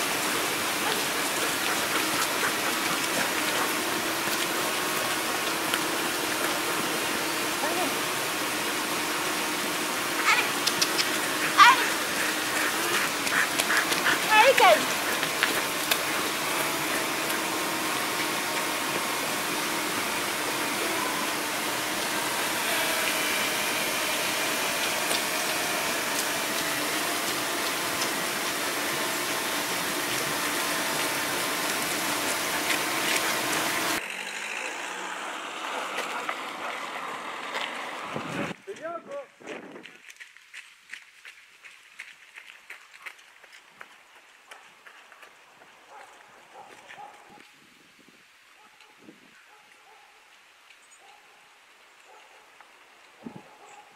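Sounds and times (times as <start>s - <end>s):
creek water rushing: 0.0s - 38.6s
dog yelping: 0.7s - 4.4s, 10.1s - 18.8s.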